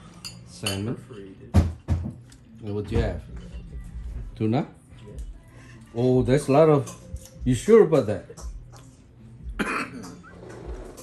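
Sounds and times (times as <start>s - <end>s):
person coughing: 9.6s - 10.2s.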